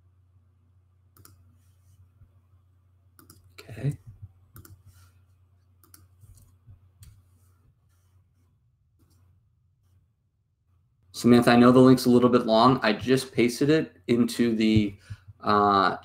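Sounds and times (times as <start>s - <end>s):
low steady hum: 0.0s - 16.0s
mouse and keyboard clicks: 1.2s - 1.4s, 3.2s - 3.5s, 4.6s - 4.8s, 5.8s - 7.2s.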